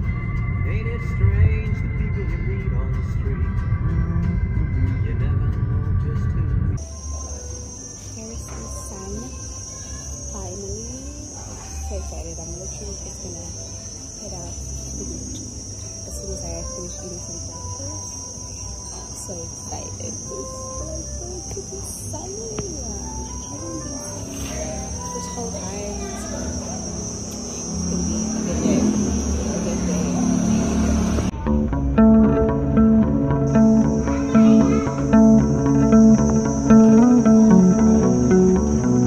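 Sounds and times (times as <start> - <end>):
high-pitched insect drone: 6.8 - 39.0
indistinct voices: 8.1 - 39.0.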